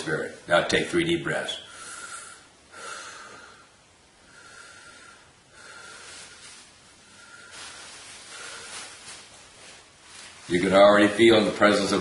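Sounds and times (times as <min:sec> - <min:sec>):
man breathing deeply: 0:01.7 - 0:09.0.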